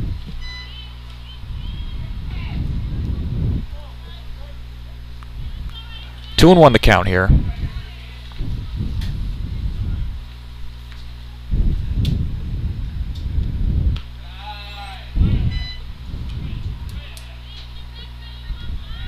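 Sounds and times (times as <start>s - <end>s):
wind buffeting microphone: 0.0s - 6.0s, 7.1s - 14.2s, 15.1s - 17.0s, 18.4s - 19.0s
steady low hum: 0.0s - 19.0s
distant voice calling out: 14.2s - 15.8s.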